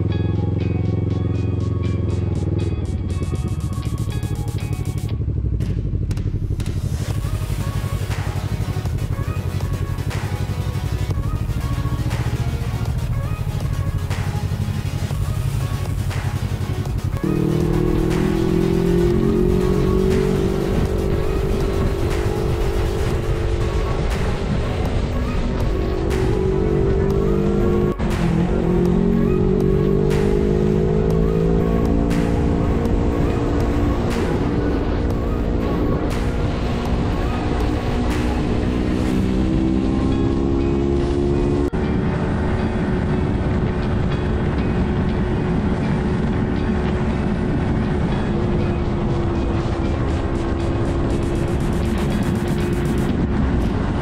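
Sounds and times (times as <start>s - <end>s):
motorcycle engine at low revs: 0.0s - 54.0s
music: 0.0s - 54.0s
wind and road noise: 0.0s - 54.0s.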